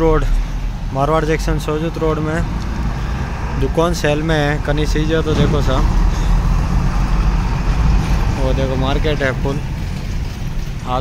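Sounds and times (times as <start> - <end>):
truck diesel engine rumbling: 0.0 - 11.0.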